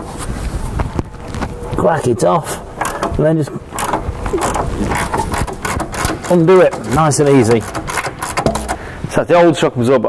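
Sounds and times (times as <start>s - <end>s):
socket ratchet clicking: 2.8s - 9.0s.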